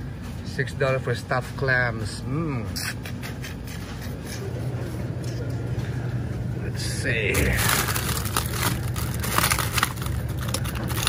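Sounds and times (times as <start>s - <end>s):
refrigerated display cases humming: 0.0s - 11.0s
store background noise: 0.0s - 11.0s.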